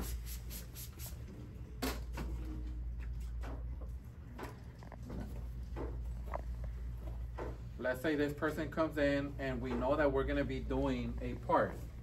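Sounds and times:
spray bottle squirt: 0.0s - 1.2s
steady low hum: 0.0s - 12.0s.

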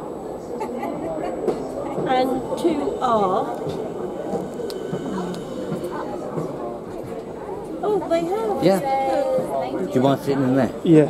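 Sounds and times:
indistinct voices talking: 0.0s - 9.6s
voice gliding down in pitch: 1.7s - 6.8s.

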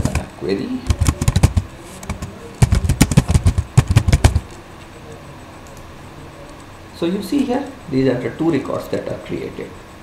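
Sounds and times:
computer keyboard typing: 0.0s - 4.6s.

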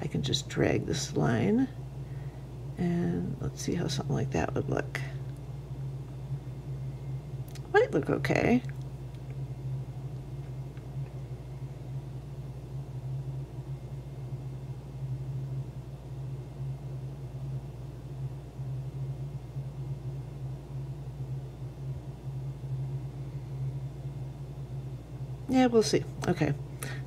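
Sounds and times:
low background hum: 0.0s - 27.0s.

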